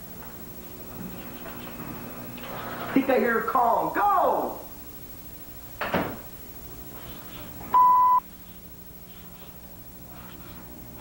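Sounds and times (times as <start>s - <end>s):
electronic beep: 7.8s - 8.2s.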